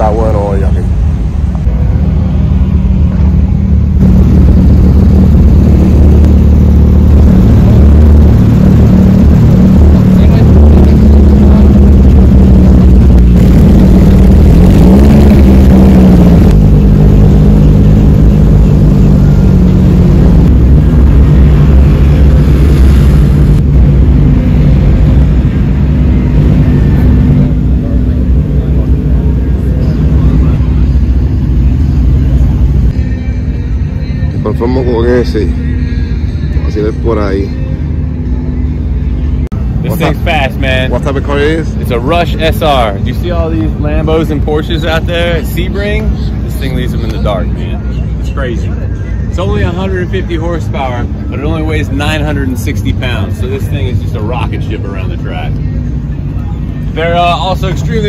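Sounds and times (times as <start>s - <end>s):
car engine running: 0.0s - 58.0s.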